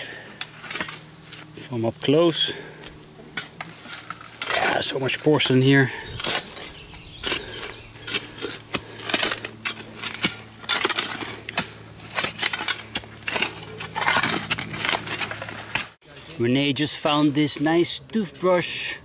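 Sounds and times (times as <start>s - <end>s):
tool scraping in dirt: 0.3s - 1.8s, 2.4s - 17.9s
shards clinking: 12.1s - 15.6s.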